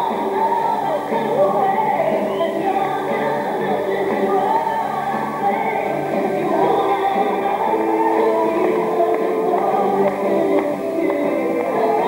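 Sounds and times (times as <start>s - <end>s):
pop song with girl singing: 0.0s - 12.0s.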